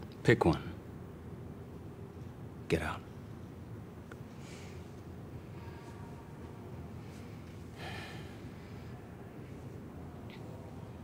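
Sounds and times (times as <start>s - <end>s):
low room rumble: 0.0s - 11.0s
person breathing: 4.3s - 4.9s, 7.0s - 9.6s.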